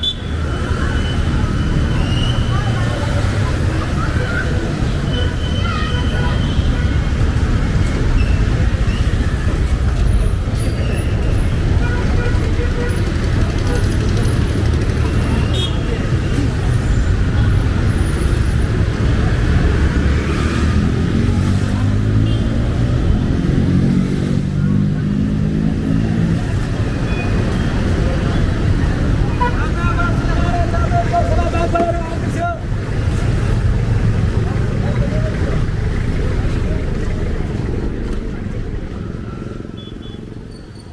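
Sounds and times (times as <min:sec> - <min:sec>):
car engines passing: 0:00.0 - 0:40.9
chatter of passers-by: 0:00.0 - 0:40.9.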